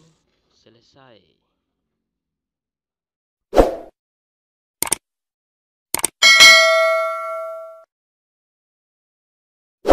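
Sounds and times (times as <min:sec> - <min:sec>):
notification bell ding: 0:06.2 - 0:07.8.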